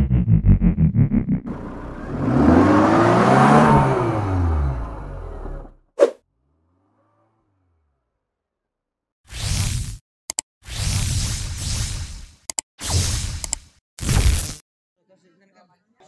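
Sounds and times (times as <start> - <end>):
pulsing synth music: 0.0 - 2.0
car engine revving: 0.0 - 8.3.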